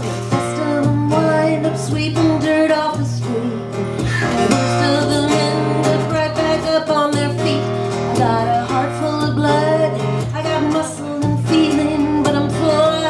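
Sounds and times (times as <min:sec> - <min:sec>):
strummed acoustic guitar: 0:00.0 - 0:13.0
woman singing folk song: 0:00.0 - 0:13.0.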